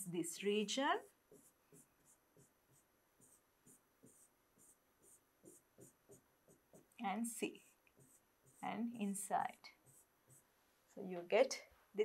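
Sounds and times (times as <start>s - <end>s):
pen strokes on whiteboard screen: 0.2s - 10.8s.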